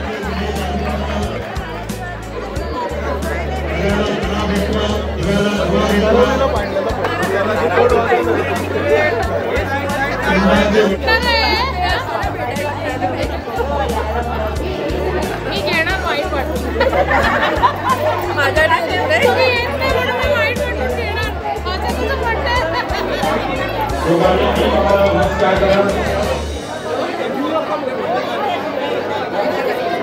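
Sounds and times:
background music with bass line: 0:00.0 - 0:26.8
people chattering and exclaiming: 0:00.0 - 0:30.0.

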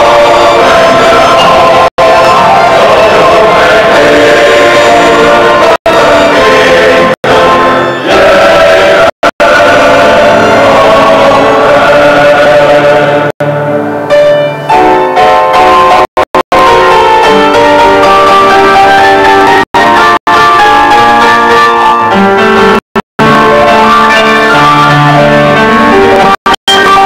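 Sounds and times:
men's choir singing: 0:00.0 - 0:13.4.

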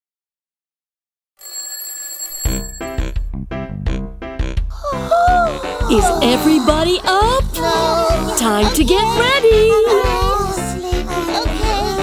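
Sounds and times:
cartoon alarm clock bell ringing: 0:01.4 - 0:03.2
bouncy children's song music: 0:03.9 - 0:12.0.

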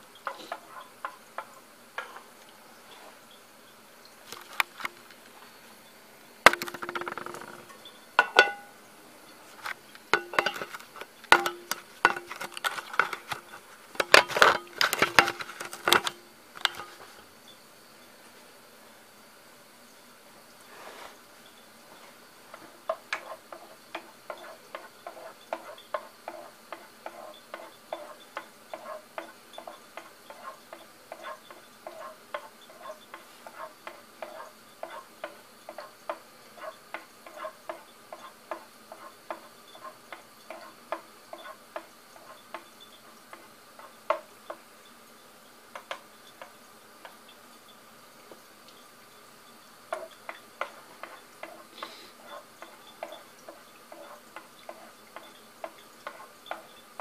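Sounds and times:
soup popping in a saucepan: 0:06.4 - 0:08.8, 0:09.9 - 0:17.1.

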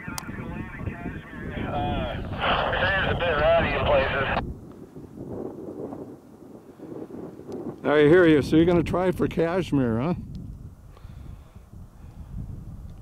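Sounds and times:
nearby person speaking: 0:00.0 - 0:04.4
tinny voice over two-way radio: 0:00.0 - 0:04.4
wind buffeting microphone: 0:00.0 - 0:13.0.

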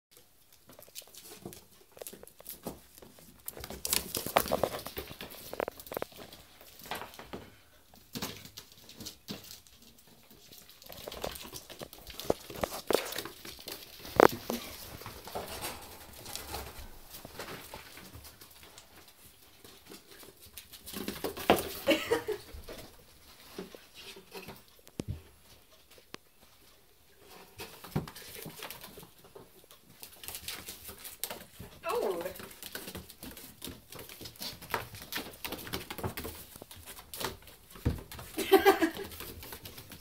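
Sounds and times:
paws and claws pattering: 0:00.2 - 0:40.0.

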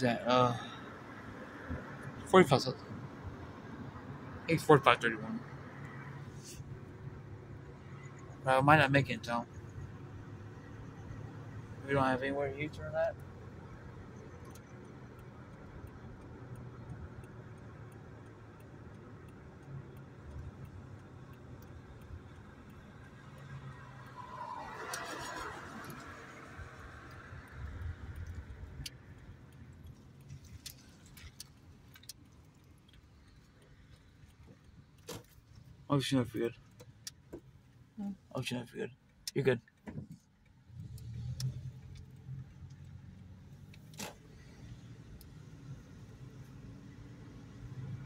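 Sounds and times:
car engine and road hum: 0:00.0 - 0:48.0
sharp ticks and clicks: 0:06.6 - 0:48.0.

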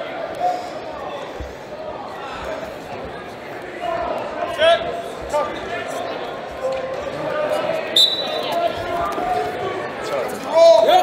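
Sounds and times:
crowd chatter in hall: 0:00.0 - 0:11.0
referee's whistle: 0:07.9 - 0:08.5.

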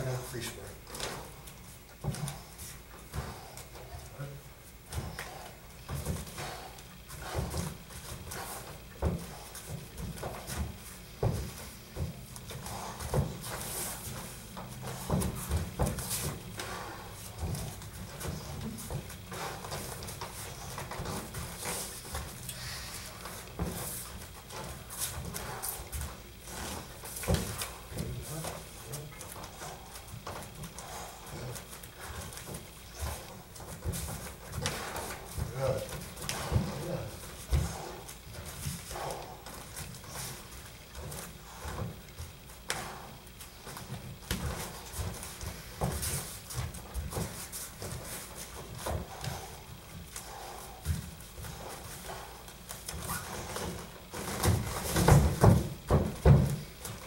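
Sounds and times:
bare feet shuffling on mats: 0:00.0 - 0:57.0
sparring thuds and slaps: 0:04.9 - 0:22.4, 0:23.1 - 0:50.2, 0:50.8 - 0:57.0.

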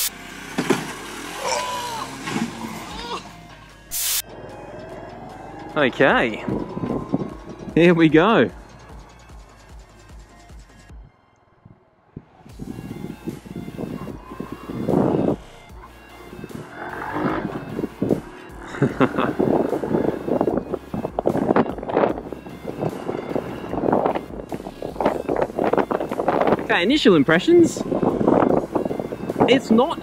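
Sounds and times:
motorcycle engine revving through gears: 0:00.0 - 0:03.6, 0:04.2 - 0:09.4, 0:12.6 - 0:26.6
background music: 0:01.0 - 0:30.0.

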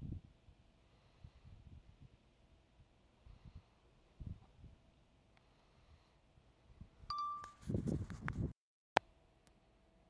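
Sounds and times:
ringing chime tone: 0:07.1 - 0:07.7.

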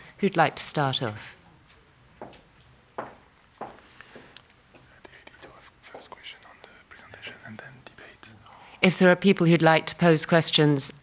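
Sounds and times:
faint whispered voices: 0:04.8 - 0:08.8.

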